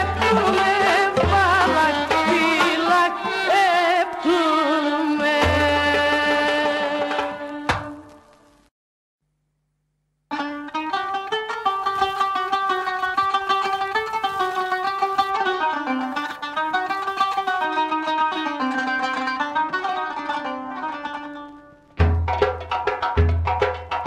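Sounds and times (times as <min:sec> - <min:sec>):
bouzouki plucked notes: 0:00.0 - 0:06.1, 0:10.3 - 0:24.0.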